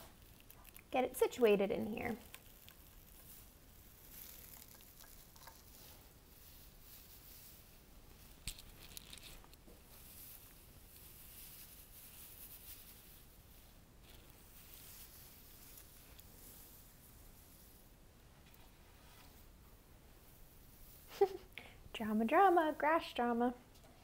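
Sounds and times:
dry grass rustling: 1.9 - 17.9.

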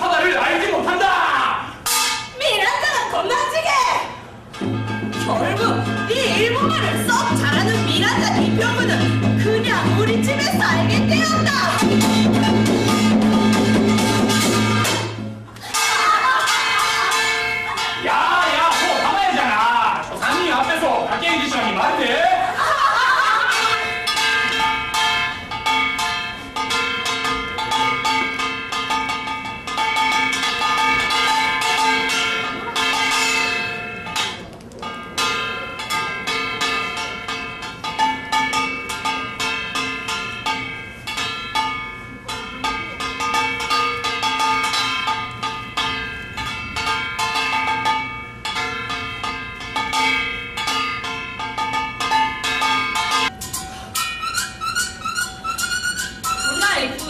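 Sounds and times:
small brass gong beaten rhythmically: 4.5 - 19.4.

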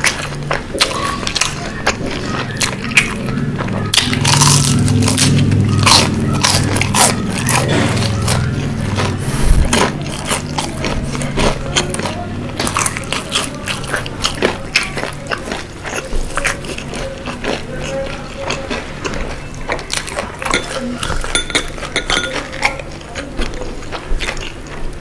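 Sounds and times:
wet chewing of fried chicken: 0.0 - 25.0.

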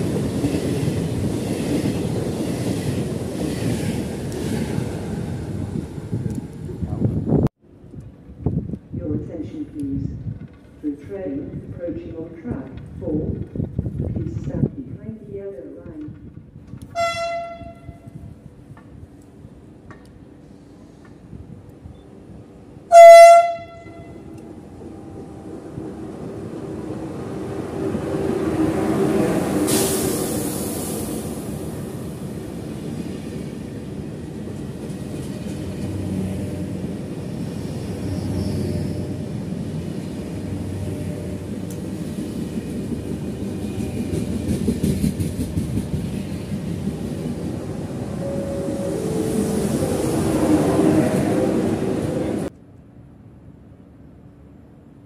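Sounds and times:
train rumbling past: 0.0 - 15.0, 15.6 - 55.0
train horn: 16.9 - 18.3, 22.9 - 24.4
brief hiss: 29.6 - 31.4.

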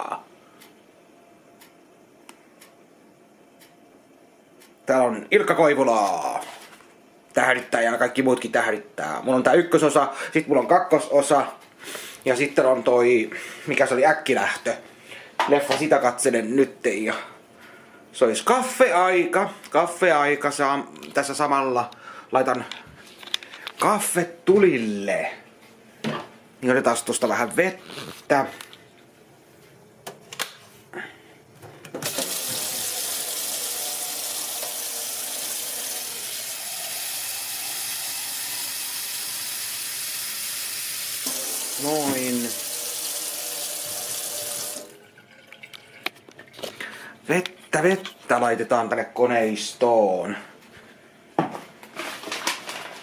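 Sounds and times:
tap water running into sink: 32.0 - 46.2.

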